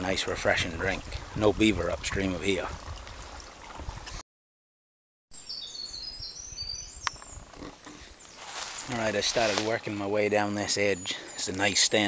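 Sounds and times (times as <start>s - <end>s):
high bird chirps: 5.3s - 9.1s.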